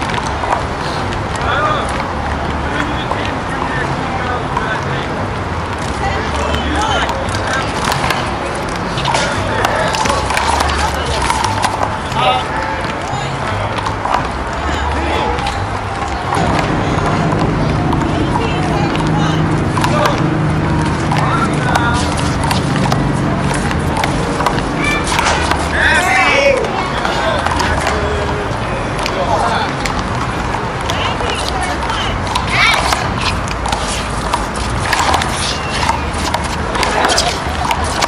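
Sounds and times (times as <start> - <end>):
voices talking: 0.0 - 38.0.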